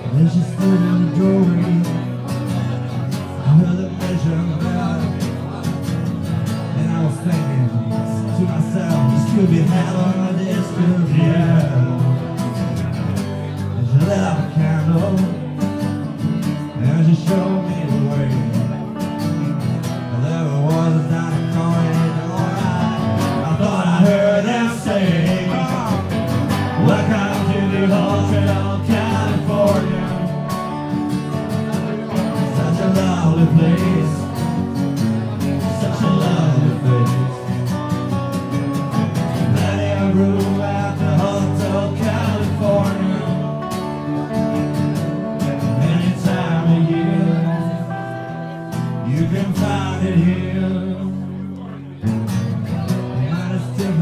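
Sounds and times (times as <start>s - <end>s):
acoustic guitar: 0.0s - 54.0s
person singing: 20.1s - 38.0s, 38.6s - 44.3s, 45.4s - 51.8s.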